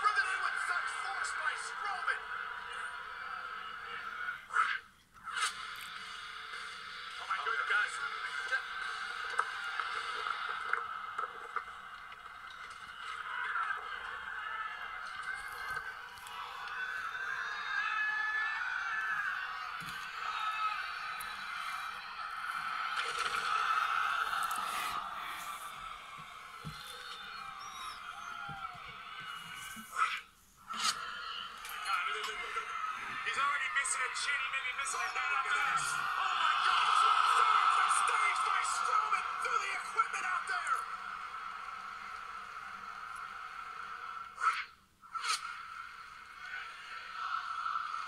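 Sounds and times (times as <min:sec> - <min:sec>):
muffled arena crowd on television: 0:00.0 - 0:48.0.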